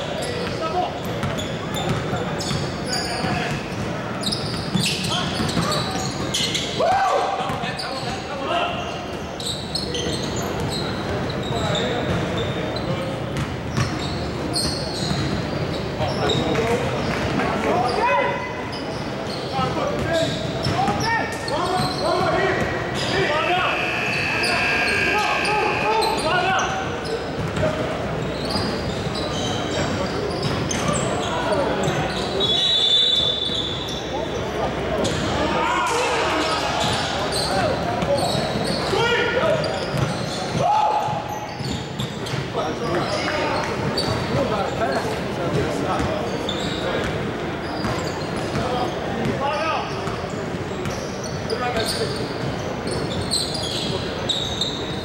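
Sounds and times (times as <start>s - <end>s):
people calling out: 23.0s - 26.8s.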